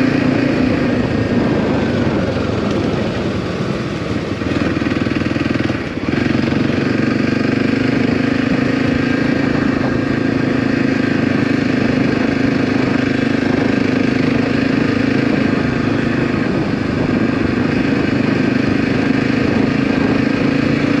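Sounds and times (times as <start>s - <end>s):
dirt bike engine running: 0.0s - 21.0s.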